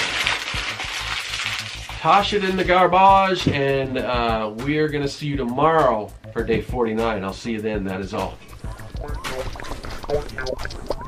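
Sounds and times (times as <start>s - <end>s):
paper being crumpled: 0.0s - 2.1s.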